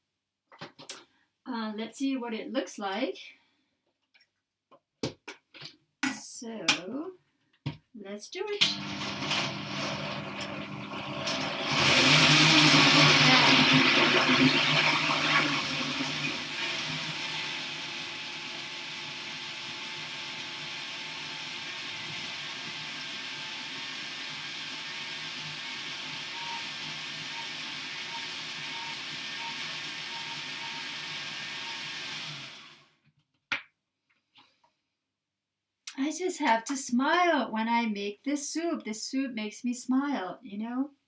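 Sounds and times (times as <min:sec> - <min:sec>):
blender click: 0:08.6 - 0:18.0
blender running: 0:08.6 - 0:33.0.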